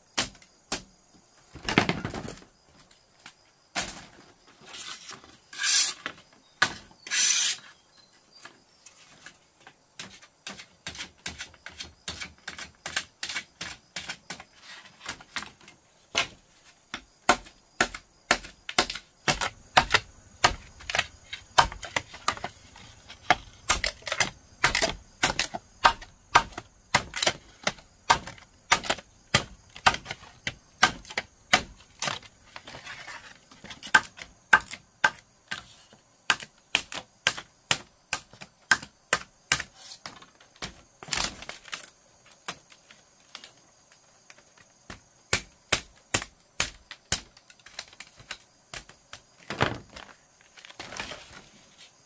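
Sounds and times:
knife splitting bamboo: 0:00.1 - 0:00.9, 0:04.8 - 0:07.7, 0:10.0 - 0:43.6, 0:44.3 - 0:49.8.

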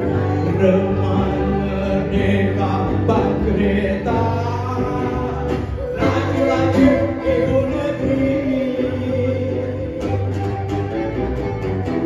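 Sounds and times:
man and woman singing: 0:00.0 - 0:10.4
acoustic guitar: 0:00.0 - 0:12.0
band accompaniment: 0:00.0 - 0:12.0.

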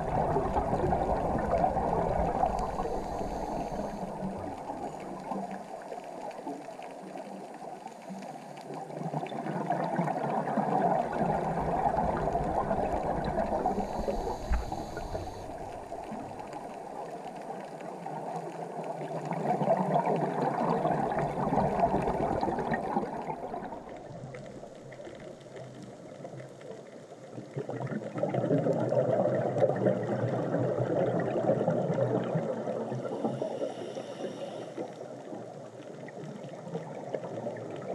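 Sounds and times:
underwater bubbles gurgling: 0:00.0 - 0:37.9.

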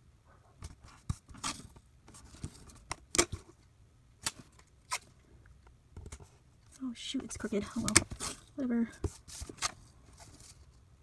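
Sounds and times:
tape and paper rustling: 0:00.6 - 0:03.6, 0:06.1 - 0:10.8.

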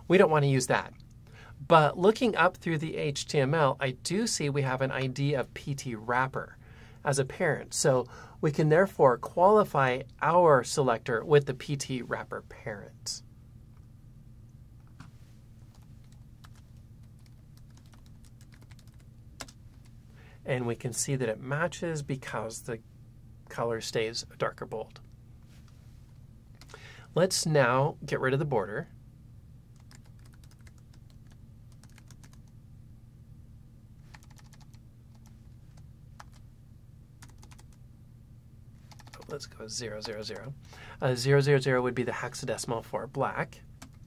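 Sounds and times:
steady low hum: 0:00.0 - 0:44.0
keyboard typing: 0:15.7 - 0:19.8, 0:29.8 - 0:32.5, 0:34.1 - 0:36.4, 0:37.2 - 0:37.8, 0:38.9 - 0:39.4.

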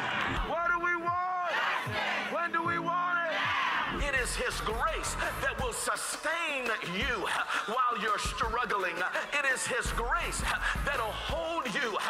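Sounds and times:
crowd of protesters: 0:00.0 - 0:12.0.

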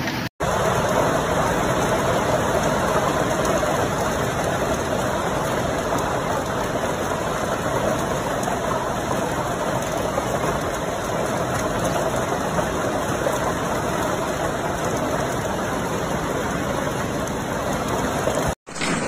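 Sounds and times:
hail and heavy rain pelting: 0:00.0 - 0:19.0.

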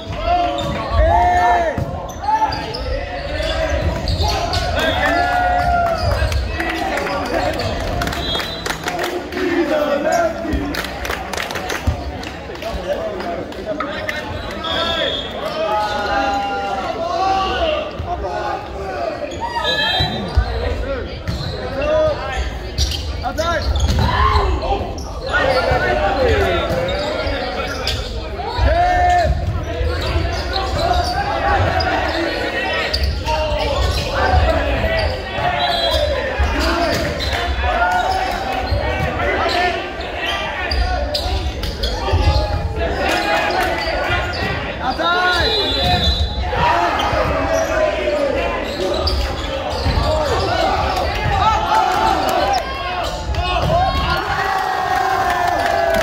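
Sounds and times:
people shouting and calling: 0:00.0 - 0:10.7, 0:21.6 - 0:56.0.

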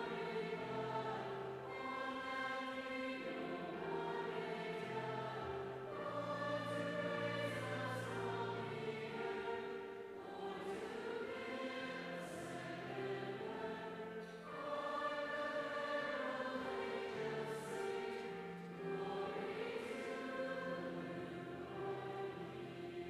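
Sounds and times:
youth choir singing: 0:00.0 - 0:23.0.

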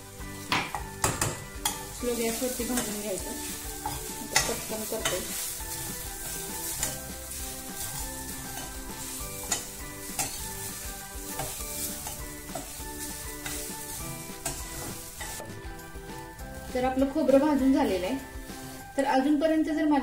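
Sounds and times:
soft background music: 0:00.0 - 0:20.0
spatula clinking against pan: 0:00.5 - 0:02.0, 0:03.7 - 0:05.4, 0:06.2 - 0:07.2, 0:08.4 - 0:10.6
metal spatula scraping a pan: 0:01.6 - 0:15.5.

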